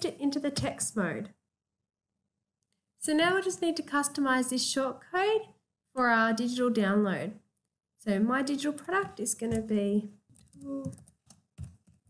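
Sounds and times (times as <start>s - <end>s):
keyboard typing: 10.3s - 12.0s.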